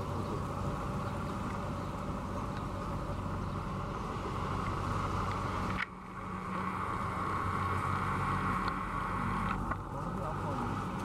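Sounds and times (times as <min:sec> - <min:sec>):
car engines humming: 0:00.0 - 0:11.0
tyre hiss on wet road: 0:00.1 - 0:11.0.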